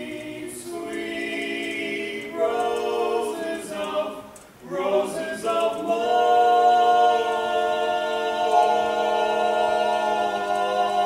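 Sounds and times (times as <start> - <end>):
barbershop quartet singing: 0.0 - 11.0.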